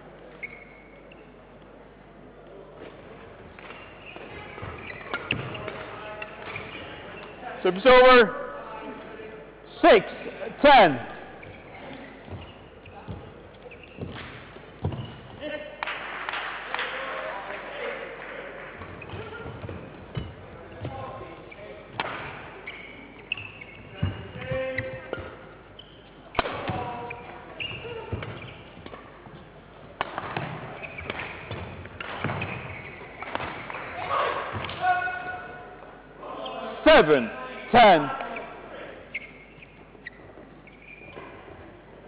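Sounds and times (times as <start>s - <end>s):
footwork on court: 2.4s - 7.6s, 11.2s - 16.0s, 18.7s - 35.5s
rackets hitting shuttlecock: 2.8s - 7.4s, 11.4s - 15.4s, 21.9s - 25.6s, 26.3s - 34.9s.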